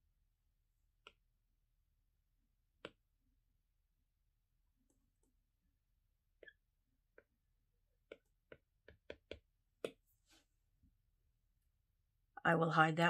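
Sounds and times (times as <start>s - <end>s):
stylus tapping on glass screen: 8.1s - 10.0s.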